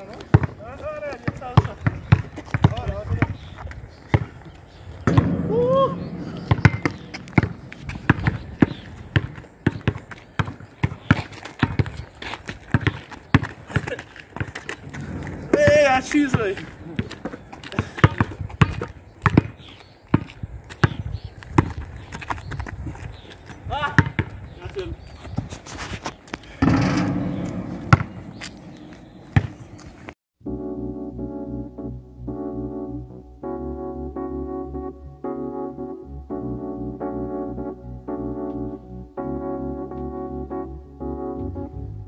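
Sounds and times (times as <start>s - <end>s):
basketball dribbling on asphalt: 0.0s - 5.4s, 6.0s - 24.5s, 26.6s - 29.8s
person shouting: 5.4s - 6.1s.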